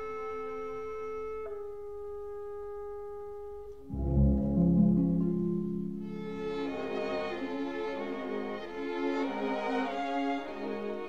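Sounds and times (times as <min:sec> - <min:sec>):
orchestral wind instruments chord: 0:03.9 - 0:11.0.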